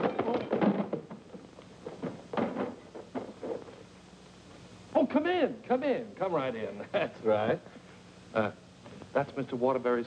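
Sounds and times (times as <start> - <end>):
irregular knocks and thuds: 0.0 - 3.8.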